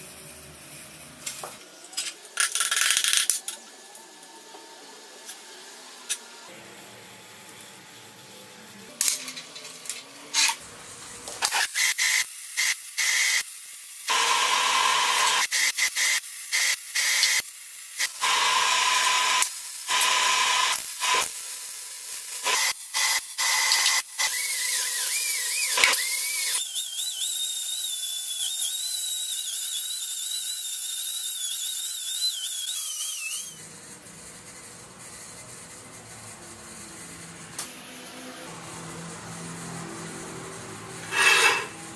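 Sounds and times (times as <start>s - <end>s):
welder arc crackling and hissing: 0.0s - 41.9s.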